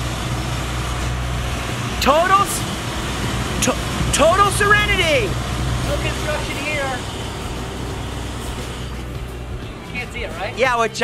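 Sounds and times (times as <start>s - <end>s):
construction machinery engine rumble: 0.0s - 11.0s.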